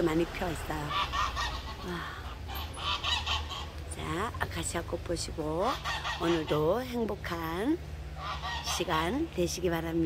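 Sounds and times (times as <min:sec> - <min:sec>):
domestic waterfowl calling: 0:00.5 - 0:04.3, 0:05.6 - 0:07.0, 0:08.1 - 0:09.2.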